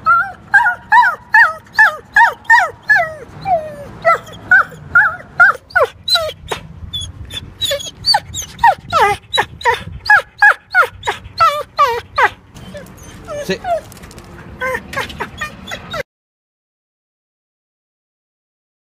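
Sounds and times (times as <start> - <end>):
dog whining: 0.0 - 16.1.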